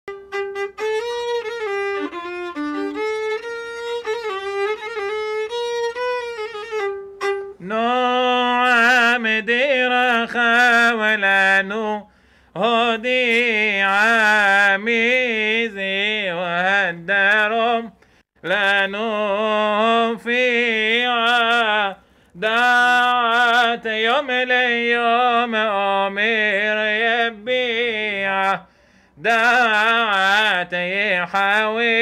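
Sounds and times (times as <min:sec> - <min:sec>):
bowed violin melody: 0:00.1 - 0:07.7
man singing ornamented melody: 0:00.1 - 0:32.0.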